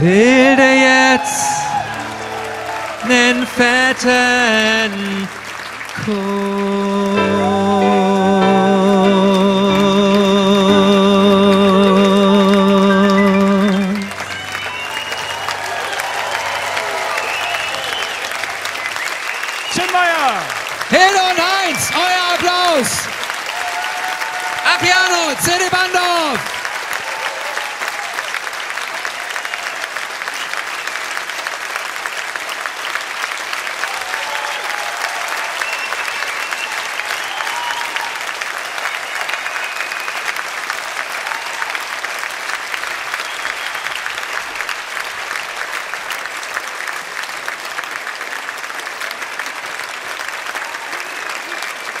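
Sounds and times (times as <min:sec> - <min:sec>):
audience applauding: 0:00.0 - 0:52.0.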